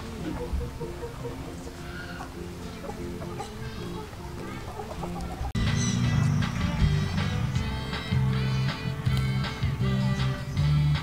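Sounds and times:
background music: 0:00.0 - 0:11.0
chickens clucking faintly: 0:00.0 - 0:11.0.

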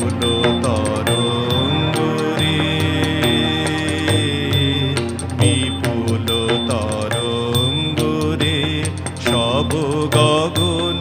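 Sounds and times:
instrumental accompaniment with beat: 0:00.0 - 0:11.0
man singing into a microphone: 0:00.0 - 0:11.0.

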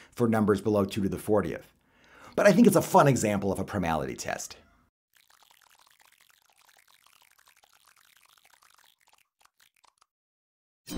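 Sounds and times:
faint rapid crackle: 0:05.1 - 0:10.2.

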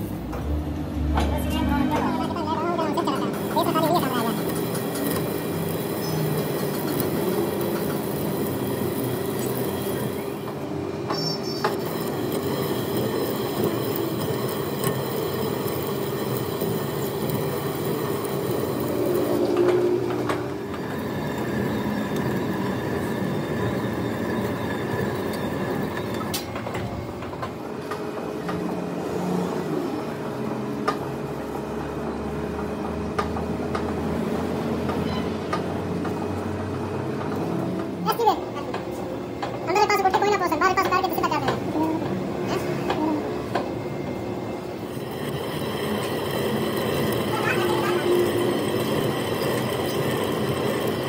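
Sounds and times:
metal lathe cutting thread: 0:03.0 - 0:10.6, 0:11.4 - 0:26.7, 0:44.7 - 0:51.0.

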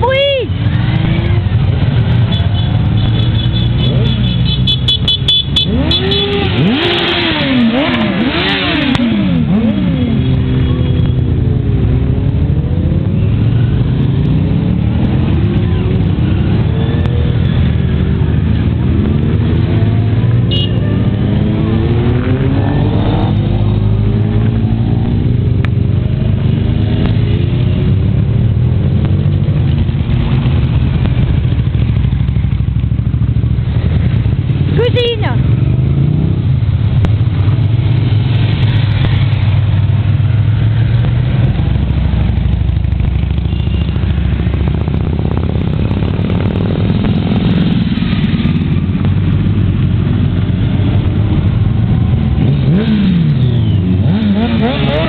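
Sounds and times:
motorcycles riding past: 0:05.5 - 0:55.0.

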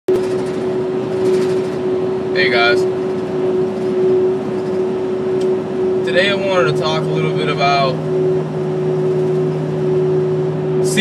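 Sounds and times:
van road and engine noise: 0:00.1 - 0:11.0.

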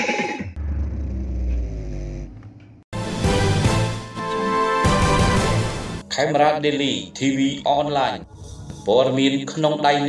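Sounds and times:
advertising voice-over: 0:06.0 - 0:10.0.

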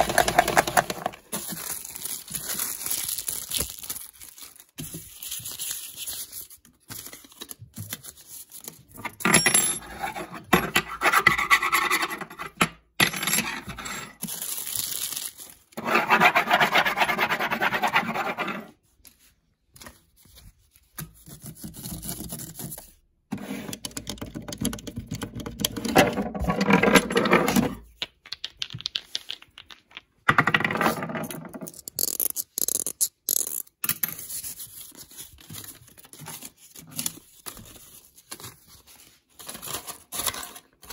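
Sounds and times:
scratchy rubbing on wooden tabletop: 0:15.8 - 0:18.8.

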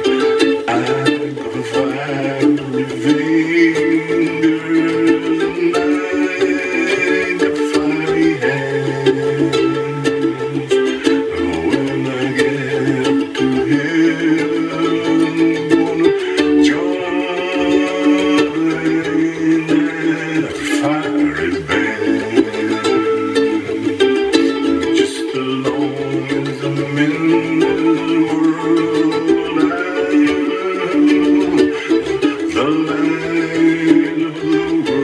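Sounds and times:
solo ukulele playing: 0:00.0 - 0:35.0.

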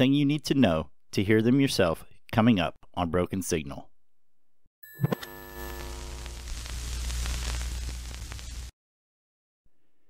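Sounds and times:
radio-like static hiss: 0:05.1 - 0:08.7.

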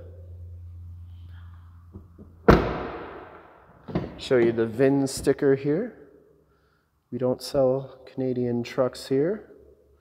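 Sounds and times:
truck door slamming: 0:02.4 - 0:04.4.

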